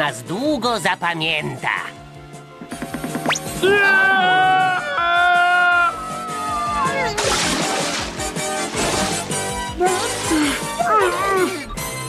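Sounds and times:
cartoon screaming cry: 3.7 - 7.2.

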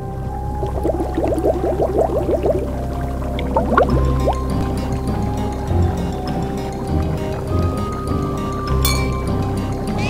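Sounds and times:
cartoon music with held notes: 0.0 - 10.0
low hum: 0.0 - 10.0
cauldron bubbling bloops: 0.4 - 7.0.

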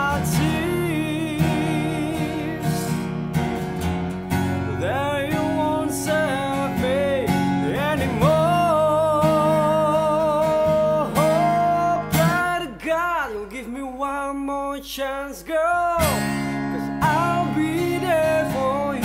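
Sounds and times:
man singing: 0.0 - 3.2, 4.6 - 19.0
acoustic guitar strumming: 0.0 - 14.8, 15.5 - 19.0.

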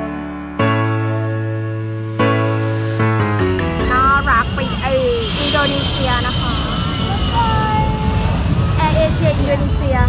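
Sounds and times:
jet engines roaring: 2.2 - 10.0
voices: 3.8 - 10.0.

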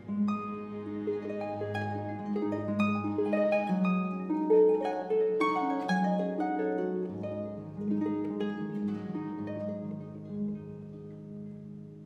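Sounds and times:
cello low held notes: 0.0 - 4.3
harp plucked notes: 0.0 - 11.8.

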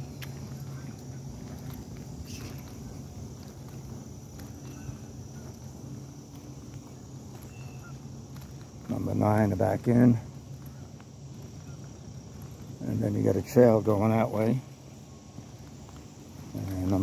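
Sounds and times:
footsteps on asphalt: 0.0 - 17.0
high insect buzz: 0.0 - 17.0
low steady hum: 0.0 - 17.0.

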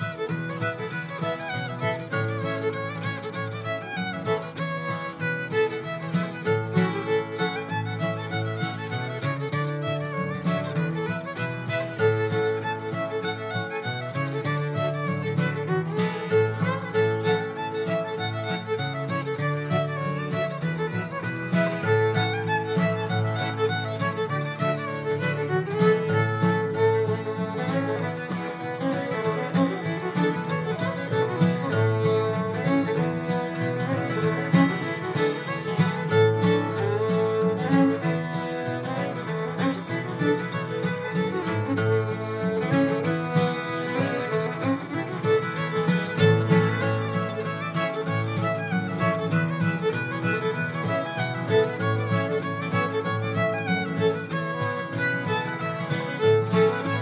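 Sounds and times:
fiddle tune on violin: 0.0 - 57.0.

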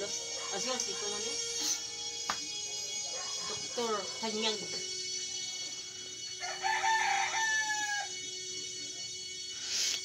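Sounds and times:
rooster crowing: 6.3 - 8.3.

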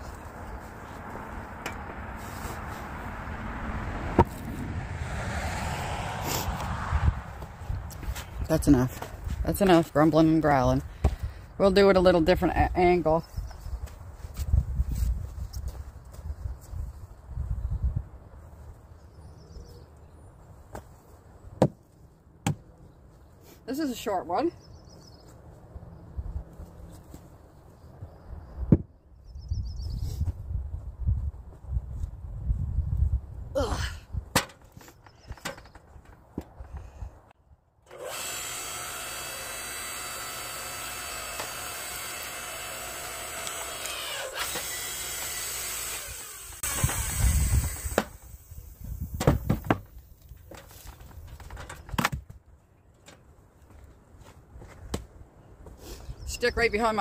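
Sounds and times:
wood knocking and thudding: 22.4 - 22.6, 49.2 - 52.4
log splitter motor and pump: 37.8 - 49.4.

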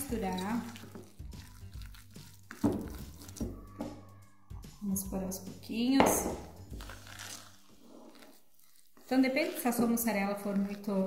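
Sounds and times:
metal spoon stirring dough: 0.0 - 4.1, 5.6 - 11.0.

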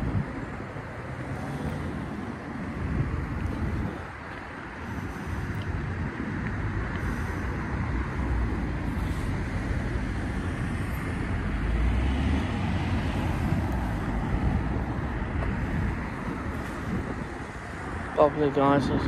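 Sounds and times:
road traffic rumble: 0.0 - 19.0
vehicle passing: 0.0 - 19.0.

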